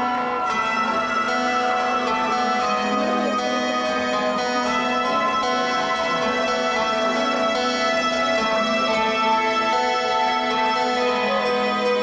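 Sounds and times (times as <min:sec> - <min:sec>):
electronic keyboard ballad: 0:00.0 - 0:12.0.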